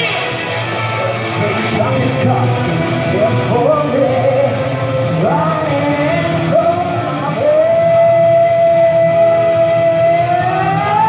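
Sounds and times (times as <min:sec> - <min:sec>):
live rock song: 0:00.0 - 0:11.0.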